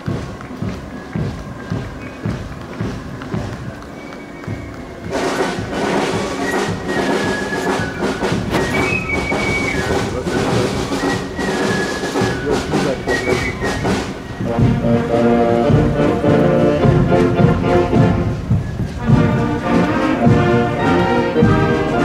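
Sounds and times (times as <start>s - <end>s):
thuds: 0.0s - 15.0s, 15.7s - 20.6s
crowd and street sounds: 0.0s - 22.0s
marching brass band playing: 0.0s - 22.0s.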